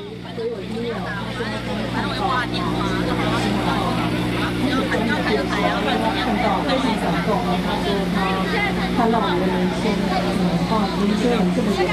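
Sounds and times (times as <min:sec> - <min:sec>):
people talking at once: 0:00.0 - 0:11.9.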